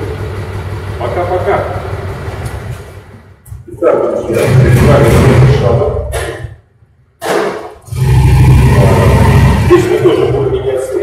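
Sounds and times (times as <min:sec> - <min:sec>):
man talking: 0:03.6 - 0:06.2, 0:09.7 - 0:11.0.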